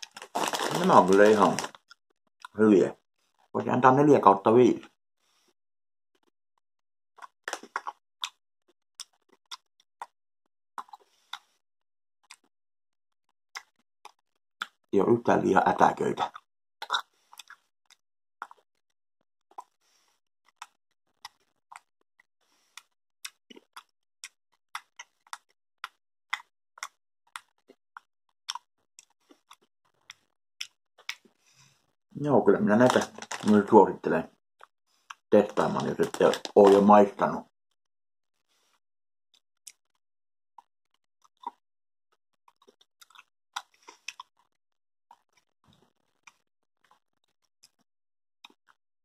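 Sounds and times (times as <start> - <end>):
mouth chewing candy: 0.0 - 3.6, 7.2 - 10.2, 10.8 - 11.6, 12.2 - 12.5, 13.5 - 14.8, 16.2 - 37.4, 38.4 - 40.0, 40.6 - 41.6, 42.4 - 48.8
sharp mouth clicks and smacks: 13.6 - 14.8, 16.3 - 17.6, 22.7 - 27.7.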